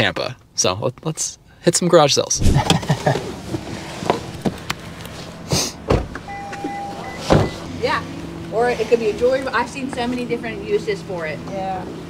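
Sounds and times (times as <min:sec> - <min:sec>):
steady low hum: 0:02.4 - 0:12.0
car door shutting thump: 0:05.8 - 0:07.7
short steady tone: 0:06.3 - 0:07.8.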